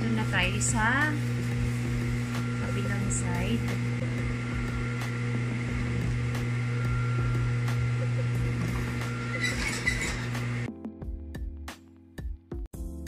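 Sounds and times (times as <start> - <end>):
sewing machine motor hum: 0.0 - 10.7.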